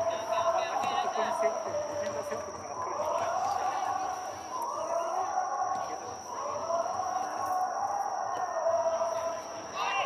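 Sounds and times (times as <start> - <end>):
stadium crowd voices: 0.0 - 10.0.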